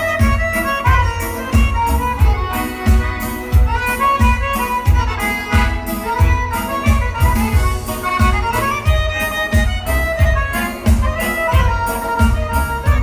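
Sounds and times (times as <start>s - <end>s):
bass drum beat: 0.0s - 13.0s
button accordion melody: 0.0s - 13.0s.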